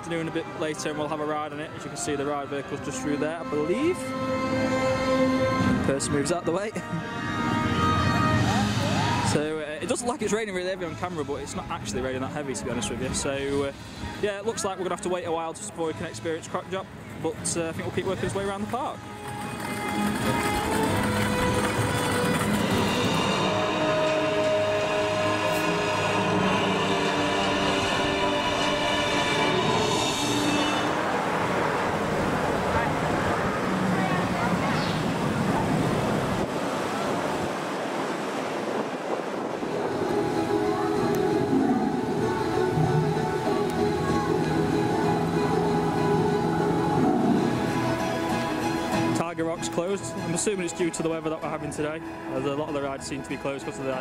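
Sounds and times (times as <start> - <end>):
music with long held notes: 0.0 - 12.9, 18.3 - 34.5, 39.6 - 54.0.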